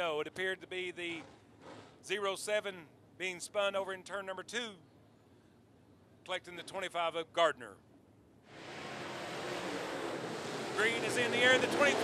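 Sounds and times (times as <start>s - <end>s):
race car engines roaring: 8.5s - 12.0s.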